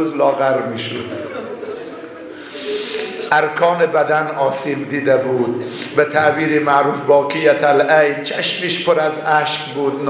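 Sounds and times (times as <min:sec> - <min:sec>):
man speaking: 0:00.0 - 0:01.4, 0:02.9 - 0:10.0
faint voices: 0:00.4 - 0:03.8
sharp intake of breath: 0:01.6 - 0:03.3.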